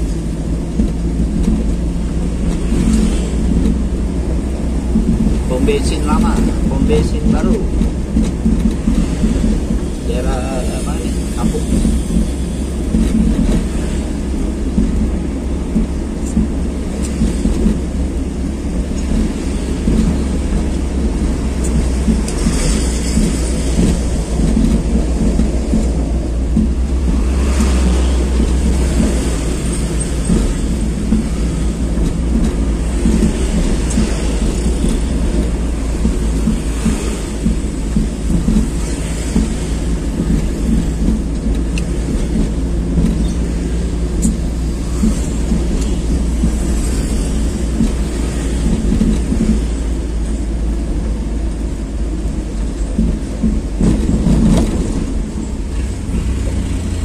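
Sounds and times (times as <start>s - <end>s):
passing traffic: 0.0s - 57.0s
road noise: 0.0s - 57.0s
vehicle engine rumble: 0.0s - 57.0s.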